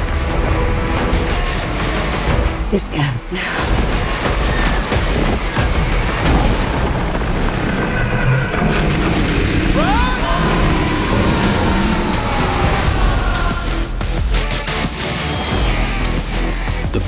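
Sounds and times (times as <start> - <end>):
dramatic score: 0.0 - 17.0
deep booms and explosions: 3.5 - 14.3
rising and falling cry: 9.5 - 14.0.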